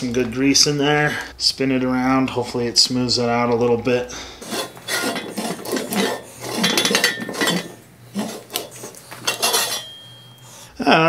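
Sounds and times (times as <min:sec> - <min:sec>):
metal squeaks and clinks: 0:04.4 - 0:10.6
metal-on-metal scraping: 0:04.4 - 0:10.6.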